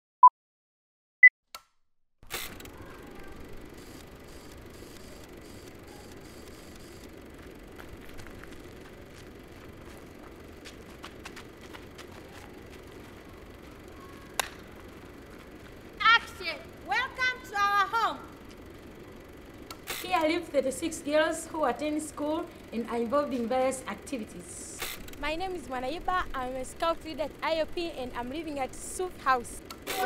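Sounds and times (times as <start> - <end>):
outdoor background noise: 2.2 - 30.0.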